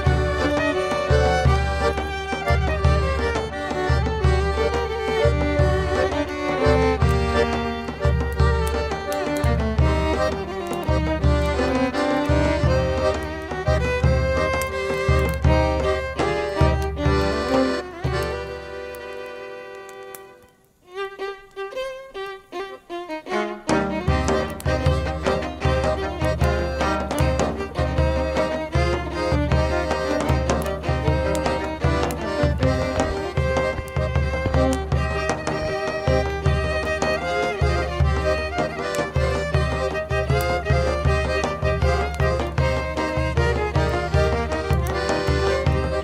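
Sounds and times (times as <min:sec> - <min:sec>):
accordion: 0:00.0 - 0:46.0
fiddle melody: 0:00.0 - 0:46.0.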